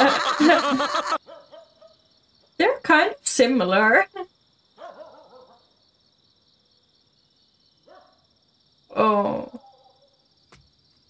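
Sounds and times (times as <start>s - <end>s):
woman laughing softly: 0.0s - 1.2s.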